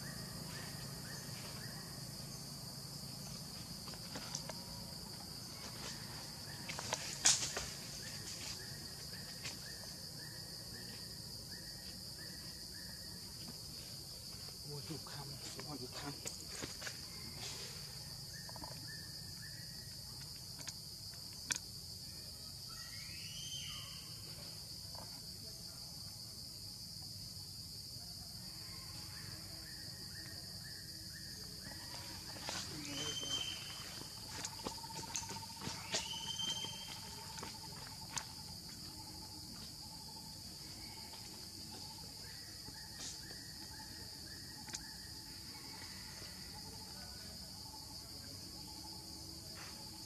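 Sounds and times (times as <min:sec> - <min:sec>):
insects chirring: 0:00.0 - 0:50.0
high-pitched insect drone: 0:28.2 - 0:50.0.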